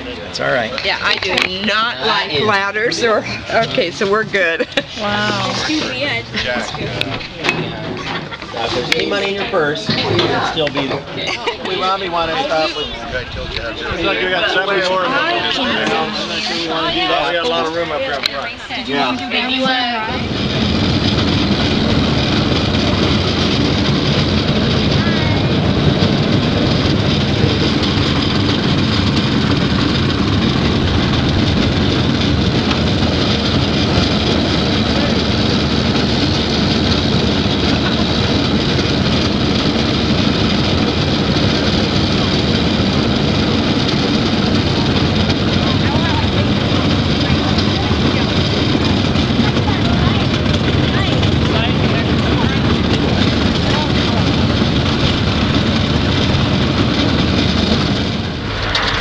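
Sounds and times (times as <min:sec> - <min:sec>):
tractor diesel engine running: 0:00.0 - 0:59.0
wind on microphone: 0:11.9 - 0:59.0.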